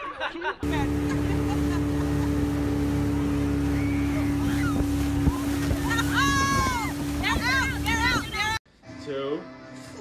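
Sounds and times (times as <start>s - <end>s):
wind: 0.0s - 10.0s
motorboat engine droning: 0.6s - 8.6s
rushing water: 0.6s - 8.6s.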